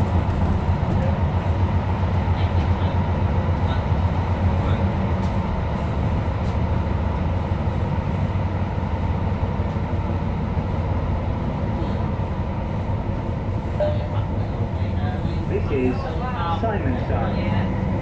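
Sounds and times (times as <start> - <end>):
train wheels rumbling on rail: 0.0 - 18.0.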